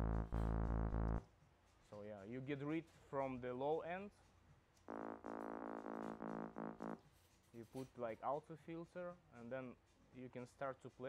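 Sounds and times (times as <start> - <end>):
synth bass repeated notes: 0.0 - 1.2, 4.9 - 7.0.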